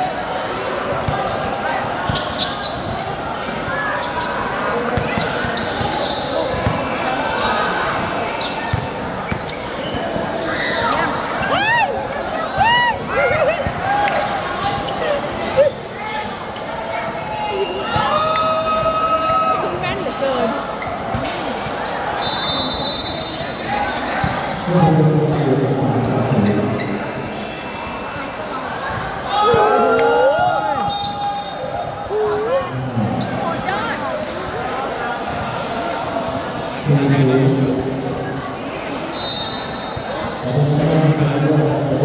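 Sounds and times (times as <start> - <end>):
shoe squeaks: 2.1 - 12.6, 14.2 - 17.0, 25.6 - 29.3
basketball bouncing on court: 6.5 - 6.8
people shouting: 29.3 - 30.9.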